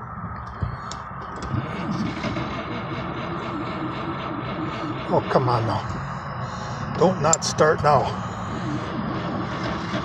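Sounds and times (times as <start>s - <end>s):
engine cranked by starter: 0.8s - 10.0s.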